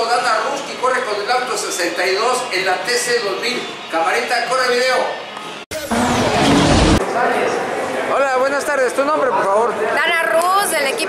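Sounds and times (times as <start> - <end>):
logo sting with deep rumble: 5.7 - 7.8
indistinct voices: 5.7 - 8.9.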